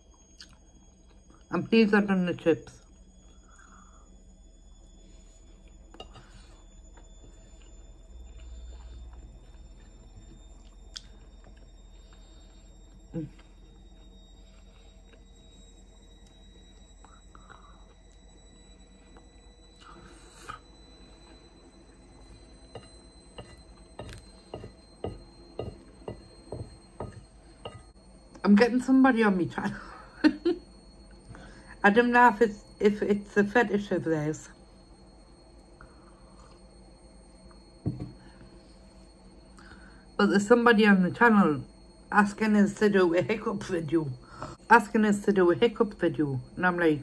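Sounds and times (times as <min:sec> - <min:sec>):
quiet chewing: 0:07.6 - 0:15.4.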